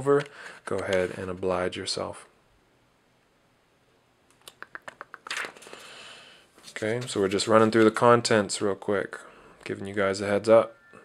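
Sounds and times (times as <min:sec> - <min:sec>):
book pages rustling: 0:00.2 - 0:01.5, 0:05.2 - 0:05.8, 0:06.6 - 0:08.2
paper crinkling: 0:05.2 - 0:05.9, 0:06.6 - 0:08.2.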